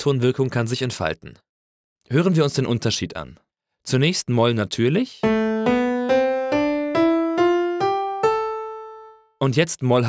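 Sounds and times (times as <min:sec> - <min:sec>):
piano playing a scale: 0:05.2 - 0:09.4.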